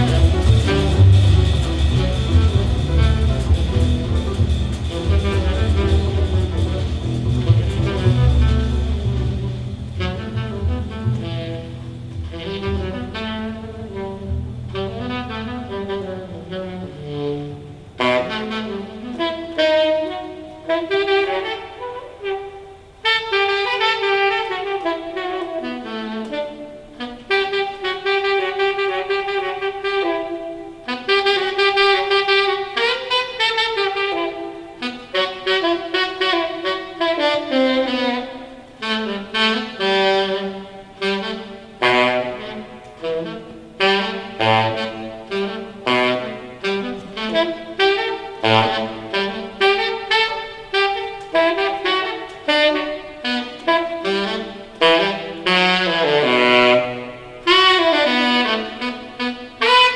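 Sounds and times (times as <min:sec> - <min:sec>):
saxophone playing jazz: 0:00.0 - 0:59.9.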